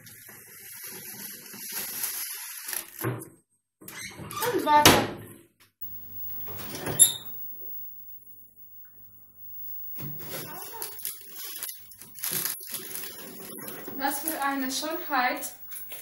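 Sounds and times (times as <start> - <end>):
oven door opening: 6.5 - 7.4.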